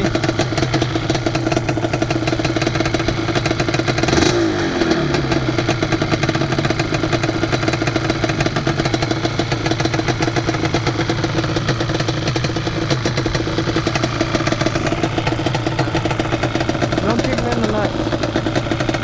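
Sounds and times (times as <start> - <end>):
atv engine idling: 0.0 - 19.0.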